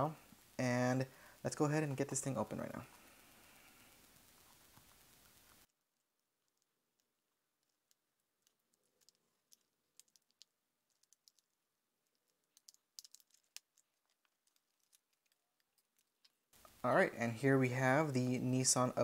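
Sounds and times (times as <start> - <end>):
plastic blister pack crackling: 6.5 - 16.5.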